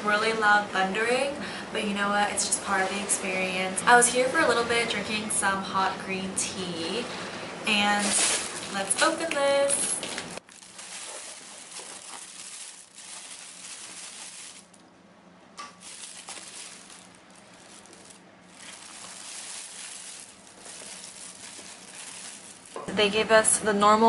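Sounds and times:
plastic bag rustling: 0:07.8 - 0:14.9, 0:15.6 - 0:22.9.

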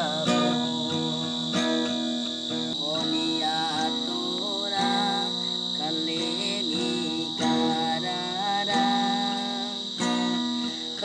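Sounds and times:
crickets chirring: 0:00.0 - 0:11.0
strummed guitar chords: 0:00.0 - 0:11.0.

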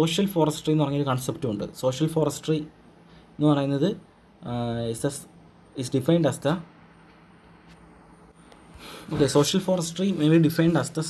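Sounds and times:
man speaking: 0:00.0 - 0:02.7, 0:03.4 - 0:06.7, 0:09.1 - 0:11.0
low steady hum: 0:00.0 - 0:11.0
man drawing a breath: 0:08.6 - 0:09.2.

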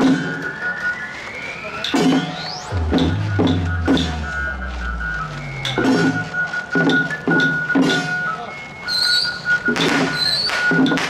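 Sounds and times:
high held tone: 0:01.2 - 0:07.3
loud drum beats: 0:02.0 - 0:08.2.

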